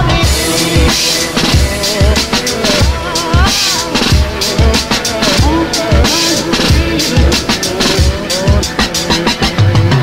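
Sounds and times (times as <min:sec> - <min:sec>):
hi-hats: 0:00.0 - 0:09.7
pitch-sliding sample: 0:00.2 - 0:09.3.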